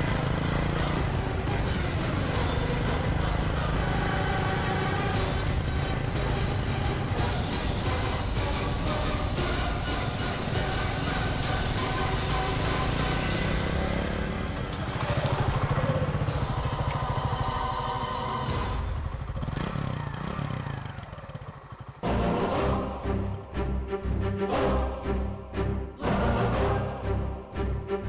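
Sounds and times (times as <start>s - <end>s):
background music with steady beat: 0.0s - 14.5s, 22.0s - 28.0s
motorcycle engine running: 0.0s - 22.2s.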